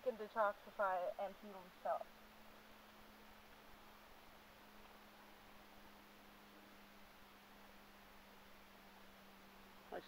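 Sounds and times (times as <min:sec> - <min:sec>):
faint low hum: 0:00.0 - 0:10.0
faint steady hiss: 0:00.0 - 0:10.0.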